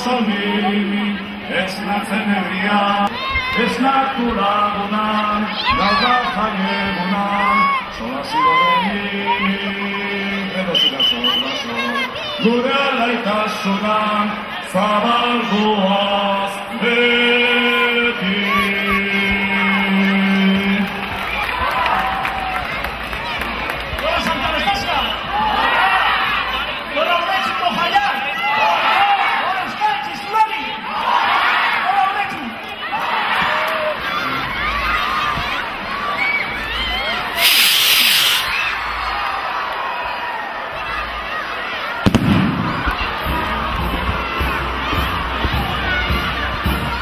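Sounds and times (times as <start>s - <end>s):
crowd noise: 0.0s - 47.0s
people shouting: 5.1s - 10.0s, 18.3s - 20.4s, 24.9s - 29.8s
crowd cheering and whooping: 18.2s - 26.9s, 32.8s - 47.0s
firework bang: 42.0s - 43.4s.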